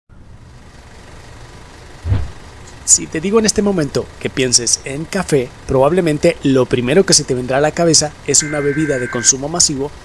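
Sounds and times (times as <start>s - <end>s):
low mechanical rumble: 0.1s - 10.0s.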